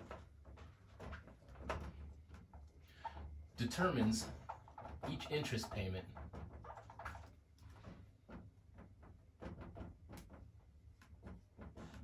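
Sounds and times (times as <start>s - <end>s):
marker squeaking on whiteboard: 2.9s - 7.4s.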